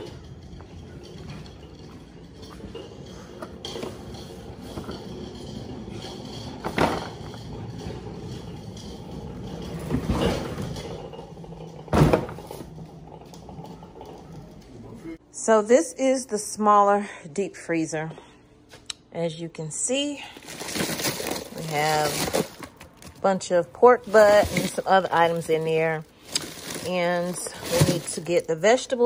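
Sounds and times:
knocks and thumps: 0:00.0 - 0:14.6.

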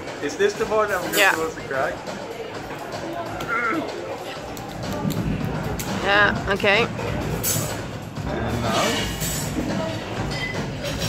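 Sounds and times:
restaurant hubbub: 0:00.0 - 0:11.0.

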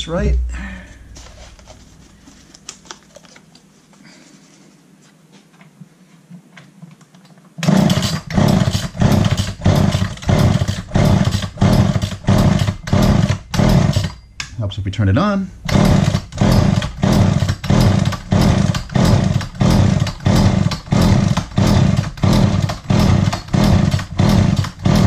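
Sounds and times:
chainsaw recoil starter cranking: 0:07.6 - 0:14.2, 0:15.6 - 0:25.0.

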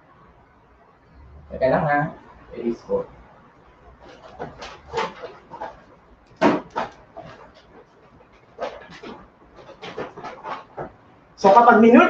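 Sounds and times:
marker scratching on whiteboard: 0:03.9 - 0:11.6.

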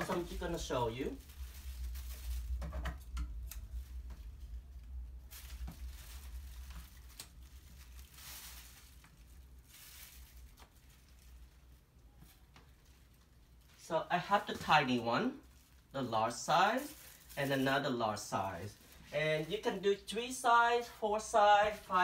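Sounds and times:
plastic bags crinkling: 0:00.0 - 0:20.1
low steady hum: 0:00.0 - 0:22.0.

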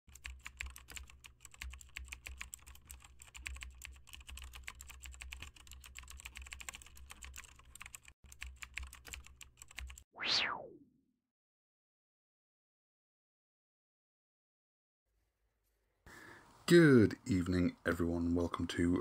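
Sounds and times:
rapid irregular clicking: 0:00.1 - 0:10.0.

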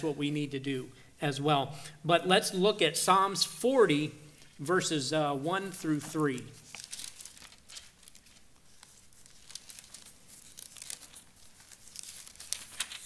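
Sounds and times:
book pages rustling: 0:05.9 - 0:13.0.

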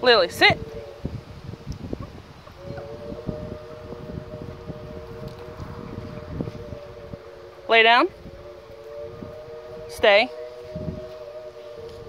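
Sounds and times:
distant siren: 0:00.0 - 0:12.0.

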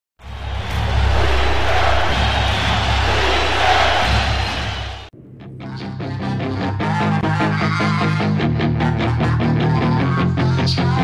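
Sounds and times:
rushing noise: 0:00.2 - 0:05.1.

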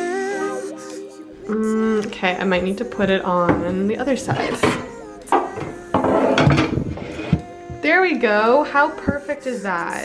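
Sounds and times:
background music: 0:00.0 - 0:10.0
shelf knocking and scraping: 0:03.0 - 0:04.8, 0:05.4 - 0:07.9.

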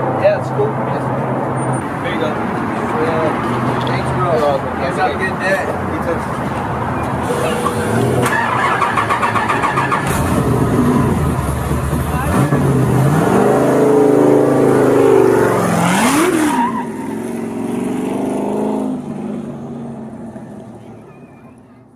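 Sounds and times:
car engine revving: 0:06.2 - 0:20.7.

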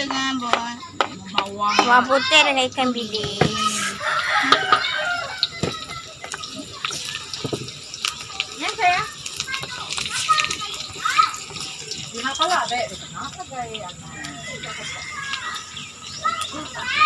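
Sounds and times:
garlic sizzling in hot oil: 0:00.0 - 0:17.0
spatula scraping a wok: 0:03.5 - 0:05.1.

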